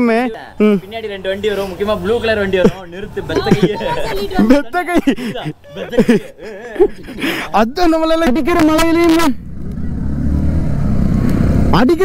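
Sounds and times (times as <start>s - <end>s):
man speaking: 0.0s - 9.4s
motorcycle engine rumble: 0.6s - 12.0s.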